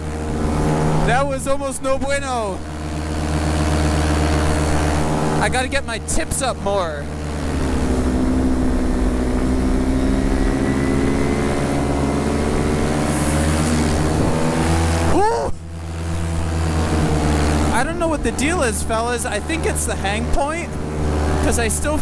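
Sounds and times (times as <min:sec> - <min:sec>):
paramotor engine and propeller: 0:00.0 - 0:22.0.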